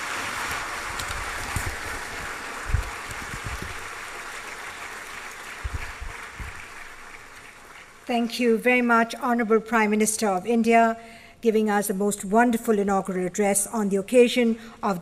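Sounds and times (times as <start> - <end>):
audience applauding: 0.0 - 8.1.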